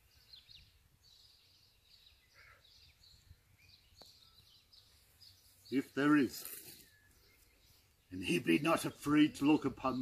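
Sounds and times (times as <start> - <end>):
faint bird chirps: 0.0 - 9.5.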